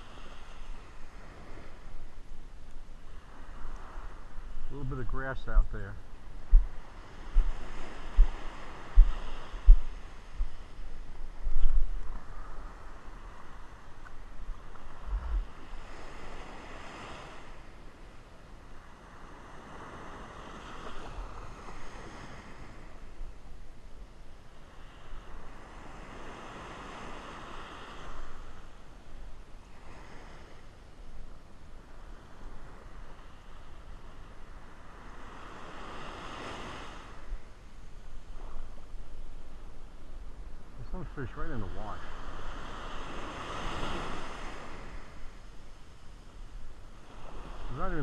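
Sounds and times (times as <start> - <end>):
ocean surf breaking on beach: 0.0 - 48.0
wind thumps on microphone: 6.2 - 12.7, 14.0 - 15.8.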